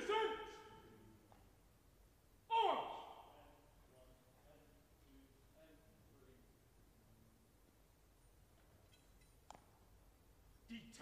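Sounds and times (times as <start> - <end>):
person shouting in echoing hall: 0.0 - 1.0, 2.5 - 3.6.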